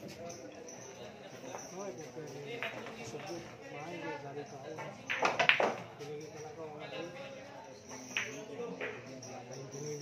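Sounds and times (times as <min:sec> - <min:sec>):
balls colliding click: 0:04.8 - 0:05.9.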